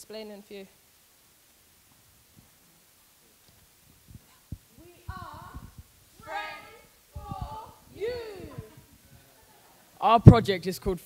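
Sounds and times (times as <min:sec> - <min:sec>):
low thumps: 0:03.9 - 0:09.0
young person calling out: 0:04.8 - 0:08.8.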